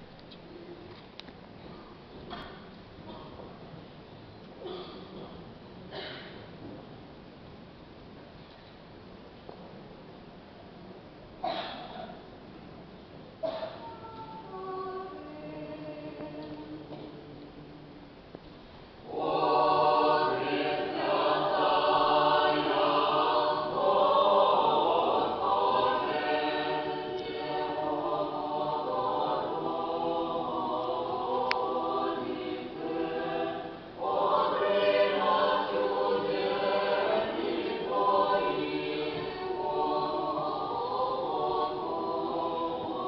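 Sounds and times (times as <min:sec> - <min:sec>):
a cappella choir singing: 0:13.5 - 0:18.2, 0:19.0 - 0:43.0.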